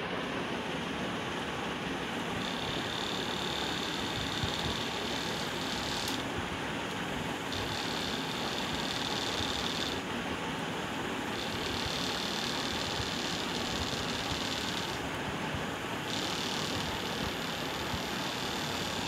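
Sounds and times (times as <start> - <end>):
thin high whine: 0.0 - 6.4, 7.2 - 19.0
small motor whirring: 2.3 - 6.3, 7.4 - 10.1, 11.2 - 15.1, 16.0 - 19.0.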